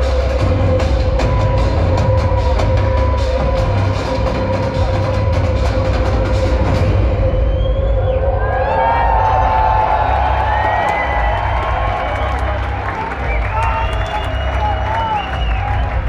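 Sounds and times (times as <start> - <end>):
crowd cheering: 0.0 - 16.0
drum and cymbal hits: 0.0 - 16.0.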